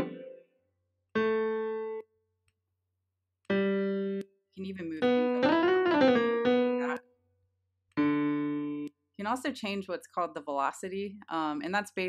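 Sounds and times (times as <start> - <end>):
piano notes: 0.0 - 0.4, 1.2 - 2.1, 3.5 - 7.0, 7.9 - 8.9.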